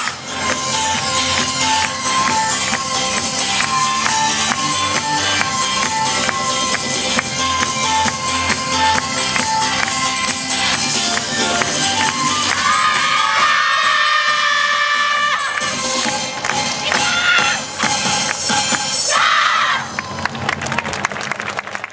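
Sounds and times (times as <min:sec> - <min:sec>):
dance music with steady beat: 0:00.0 - 0:19.1
group shouts and cheers: 0:12.4 - 0:15.7, 0:16.9 - 0:17.7, 0:19.0 - 0:20.0.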